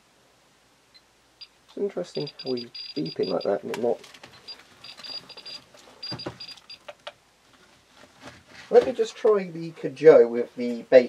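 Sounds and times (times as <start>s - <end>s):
geiger counter beeping: 1.4s - 3.6s, 4.4s - 6.8s.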